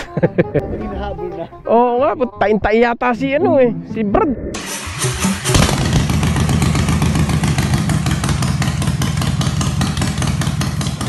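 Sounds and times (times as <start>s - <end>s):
motorcycle engine idling: 4.7s - 11.0s.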